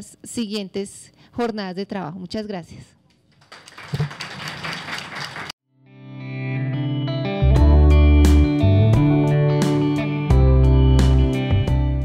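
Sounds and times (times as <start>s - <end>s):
audience applause: 3.4s - 5.5s
instrumental closing music: 6.0s - 12.0s.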